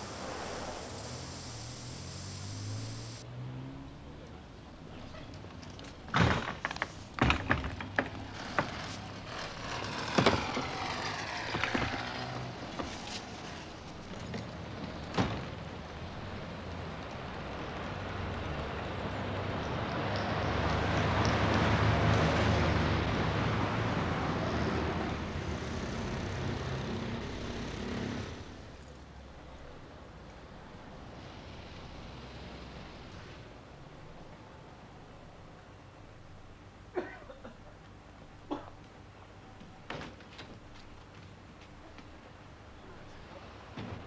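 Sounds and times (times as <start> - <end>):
vehicle passing: 0.0 - 4.4, 8.2 - 15.1, 15.7 - 28.8.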